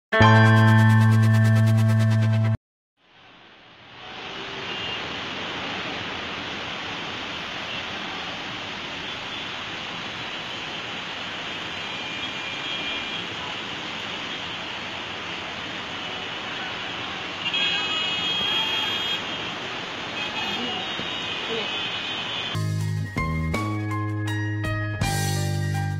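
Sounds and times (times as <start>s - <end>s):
short music sting with beat: 0.2s - 2.6s, 22.6s - 25.9s
traffic noise: 3.0s - 22.7s
car horns honking: 16.5s - 19.6s, 20.2s - 22.6s.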